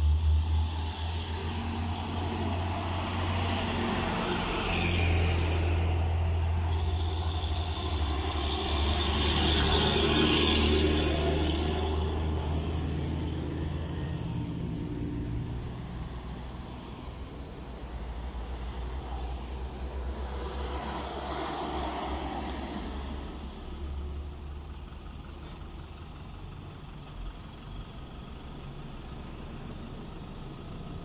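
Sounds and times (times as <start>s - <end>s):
suv passing: 0.0s - 23.3s
diesel truck passing: 0.0s - 24.2s
small car approaching: 0.0s - 31.0s.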